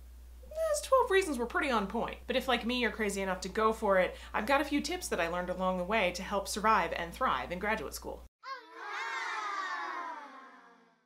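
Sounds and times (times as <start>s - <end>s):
baby crying: 8.4s - 11.0s.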